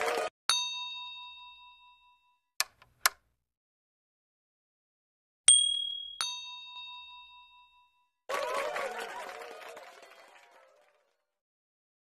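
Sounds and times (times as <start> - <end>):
high ding: 0.5 - 2.4, 5.5 - 8.1
bell ring with several tones: 5.5 - 8.0.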